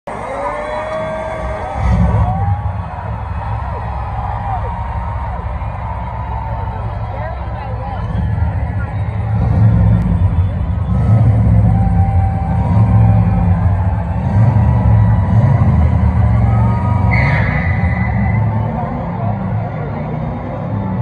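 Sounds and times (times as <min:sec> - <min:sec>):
crowd voices: 0:00.0 - 0:21.0
distorted low rumble: 0:00.8 - 0:21.0.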